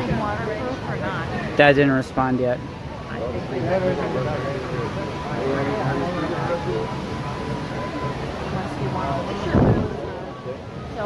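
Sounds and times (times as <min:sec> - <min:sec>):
faint steady tone: 0:00.0 - 0:11.0
people talking: 0:00.0 - 0:11.0
low rumble on microphone: 0:06.5 - 0:11.0.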